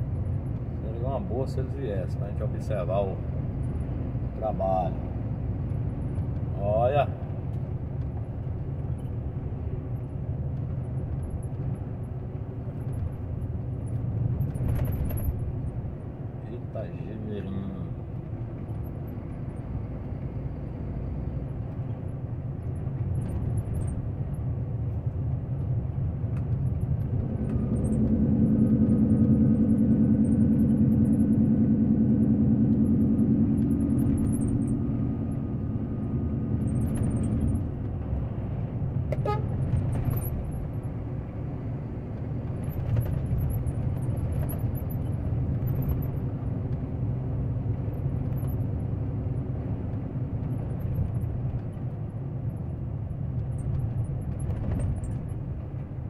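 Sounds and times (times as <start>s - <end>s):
truck engine rumble and road noise: 0.0s - 56.0s
even-pitched engine drone: 26.8s - 37.8s.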